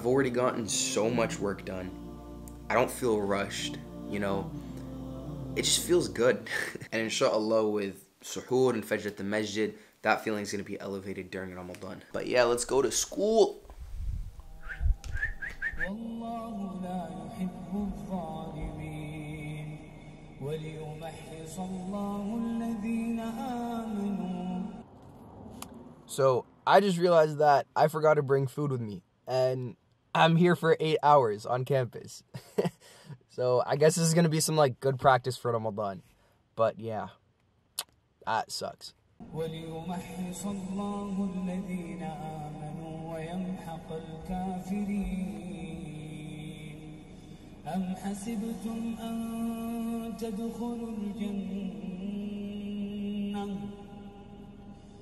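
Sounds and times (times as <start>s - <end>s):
voices singing long notes: 0.0s - 6.9s
rising whistle-like chirps: 14.4s - 16.0s.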